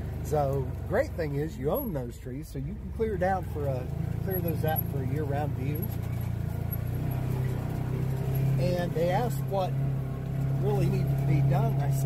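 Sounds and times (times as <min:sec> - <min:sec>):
utility vehicle engine running: 0:00.0 - 0:12.0.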